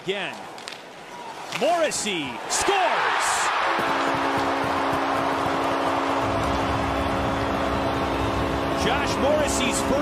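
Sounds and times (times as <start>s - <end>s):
arena crowd noise: 0.0s - 10.0s
held low chord: 4.2s - 10.0s.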